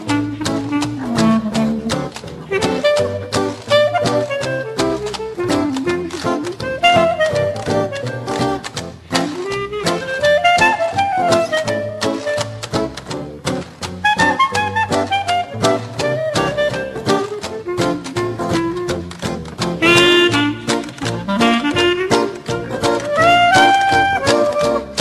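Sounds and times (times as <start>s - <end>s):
acoustic guitar: 0.0s - 25.0s
clarinet melody: 0.0s - 25.0s
plucked string bass: 0.0s - 25.0s
washboard rhythm: 0.0s - 25.0s.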